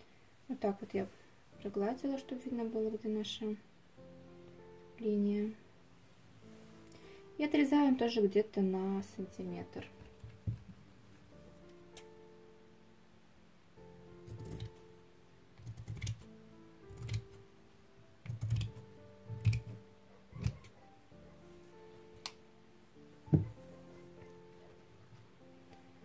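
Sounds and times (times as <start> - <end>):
soft background music: 0.0 - 26.0
scissors snipping fabric: 14.3 - 14.8, 17.0 - 17.3, 18.2 - 18.8
knock: 23.3 - 23.6.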